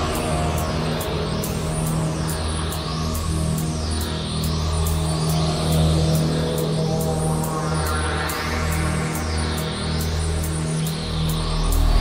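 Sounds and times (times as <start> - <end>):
psytrance music: 0.0 - 12.0.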